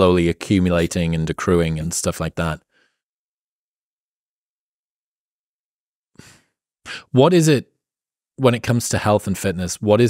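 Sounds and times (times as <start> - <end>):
man breathing in: 2.7 - 3.1, 6.2 - 7.1.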